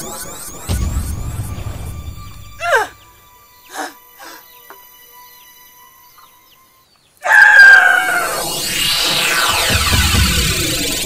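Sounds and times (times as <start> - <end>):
music: 0.0 - 7.1, 8.4 - 11.0
faint bird chirps: 0.0 - 8.6
rooster crowing: 7.2 - 8.6.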